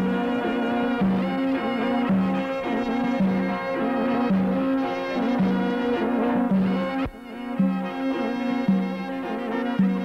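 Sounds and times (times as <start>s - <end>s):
folk dance tune on wind instruments: 0.0s - 10.0s.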